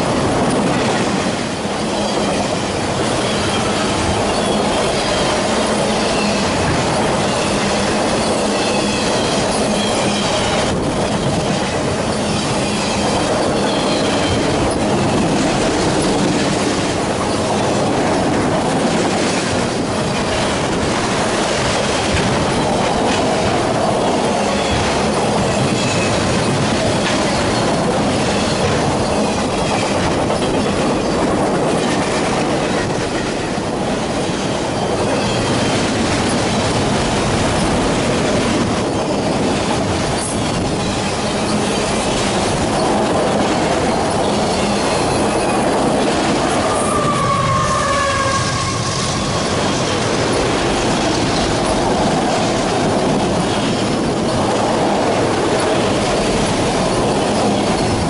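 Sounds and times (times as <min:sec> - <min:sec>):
train wheels rumbling on rail: 0:00.0 - 0:58.0
high wheel squeals: 0:07.2 - 0:15.3, 0:44.1 - 0:50.5.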